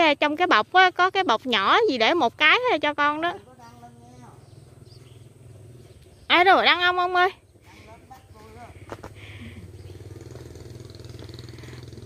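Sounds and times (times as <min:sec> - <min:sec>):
motorbike engine idling: 0:00.0 - 0:12.0.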